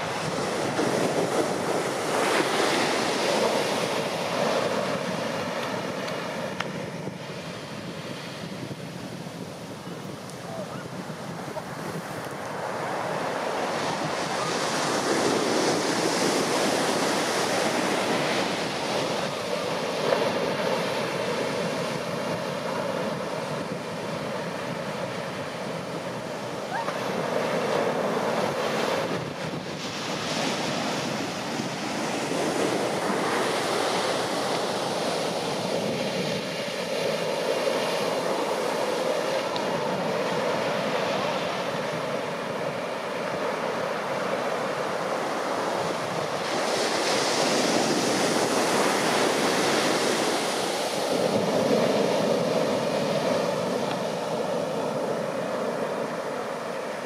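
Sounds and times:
ocean waves crashing: 0.0 - 57.0.

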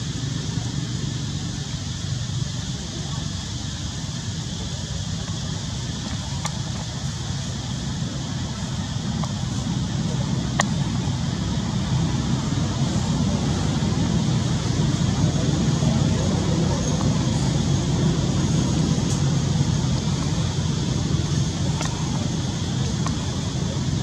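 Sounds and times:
low rumbling background noise: 0.0 - 24.0.

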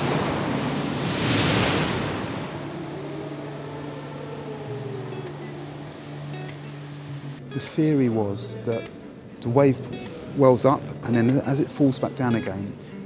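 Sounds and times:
big wave crashing: 0.0 - 4.0.

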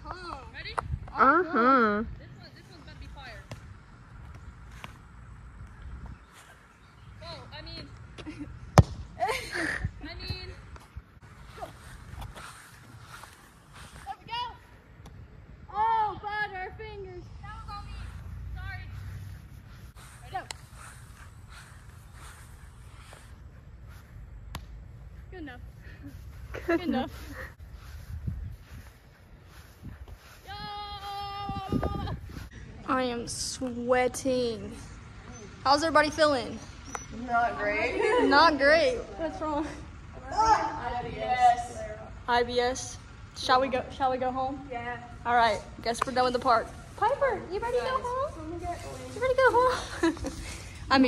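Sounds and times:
low uneven rumble: 0.0 - 51.0
voices calling out: 30.1 - 51.0.

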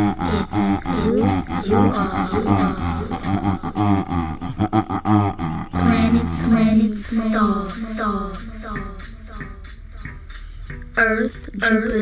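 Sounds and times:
pitched vocal sounds: 0.0 - 9.8, 11.0 - 12.0
beatbox mouth percussion: 0.0 - 12.0.

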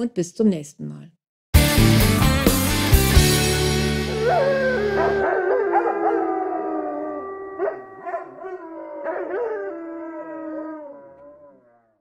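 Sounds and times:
held music chord: 1.6 - 5.5
dog howling: 4.1 - 12.0.

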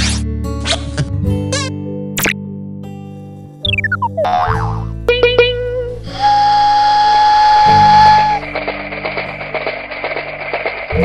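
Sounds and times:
cartoon music: 3.6 - 8.6
springy boing notes: 3.7 - 5.9
whistle-like tone: 5.1 - 8.6
fast rattling rhythm: 8.1 - 11.0.

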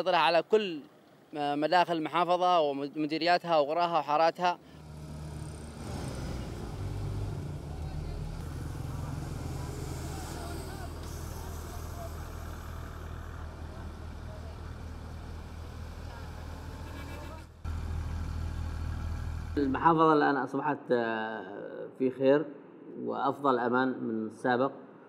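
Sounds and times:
vehicle engines droning: 4.6 - 19.9
faint voices: 7.6 - 17.6.

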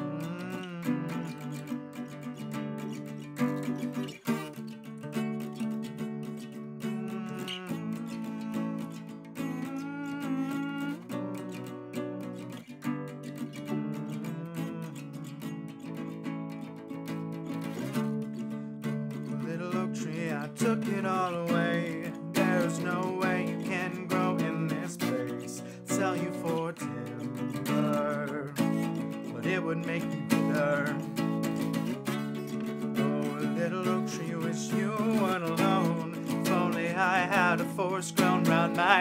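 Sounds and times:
acoustic guitar playing: 0.0 - 39.0.

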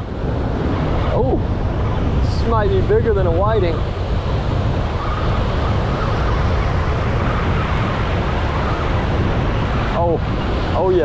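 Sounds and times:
surf washing in: 0.0 - 11.0
wind buffeting microphone: 0.0 - 11.0.

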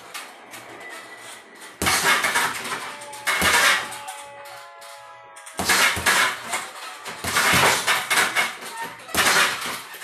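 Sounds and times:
punches thudding on heavy bag: 1.8 - 3.9, 5.6 - 6.5, 7.2 - 10.0.

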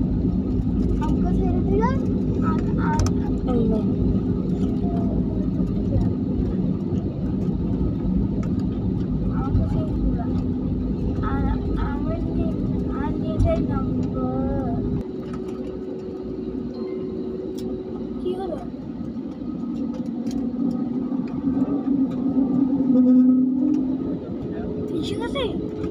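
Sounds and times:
hum: 0.0 - 25.9
jet engine drone: 0.0 - 25.9.

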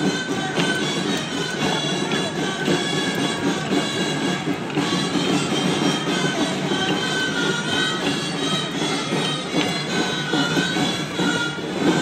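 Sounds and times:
drums: 0.0 - 12.0.

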